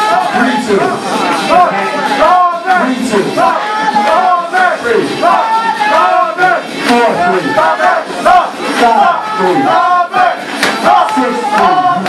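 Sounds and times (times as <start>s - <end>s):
crowd yelling: 0.0s - 12.0s
man shouting into a microphone: 0.0s - 12.0s.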